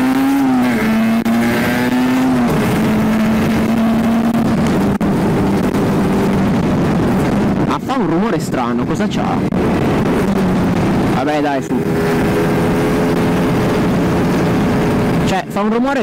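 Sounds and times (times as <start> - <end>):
two-stroke motorcycle engine cruising: 0.0 - 7.9, 9.0 - 16.0
wind noise: 0.0 - 16.0.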